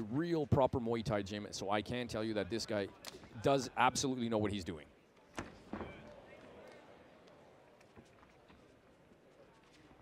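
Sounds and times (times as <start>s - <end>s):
faint voices in a hall: 0.0s - 10.0s.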